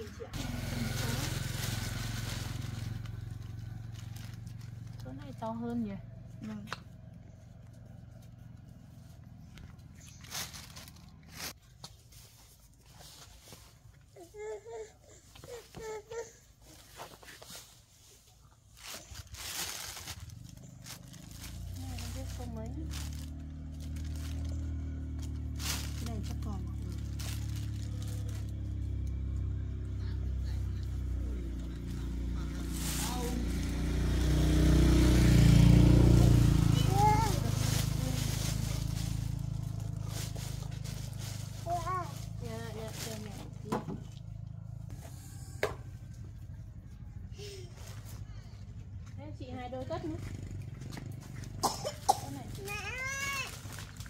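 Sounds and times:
plastic bags crinkling: 0.0s - 5.4s, 9.7s - 11.6s, 18.6s - 29.0s, 36.6s - 43.6s, 51.5s - 54.0s
passing vehicle engine rumble: 0.0s - 11.6s, 18.8s - 54.0s.

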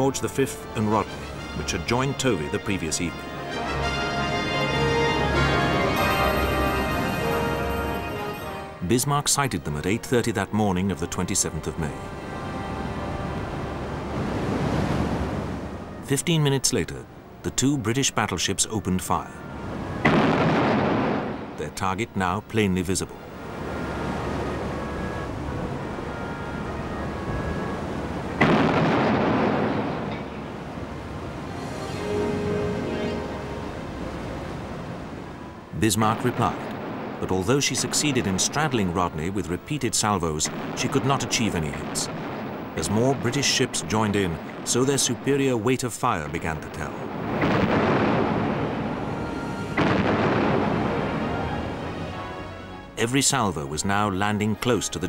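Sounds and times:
heavy gunfire boom: 20.1s - 21.6s, 28.4s - 30.3s, 40.5s - 49.0s, 49.8s - 51.6s.

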